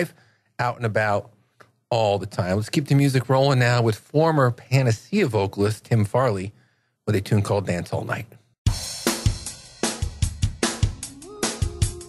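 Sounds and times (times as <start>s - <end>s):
drum kit beat: 8.7s - 12.0s.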